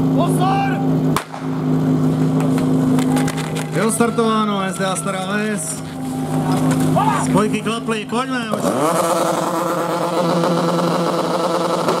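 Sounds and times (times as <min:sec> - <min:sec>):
small pump engine running: 0:00.0 - 0:12.0
sharp crack: 0:01.2 - 0:01.6.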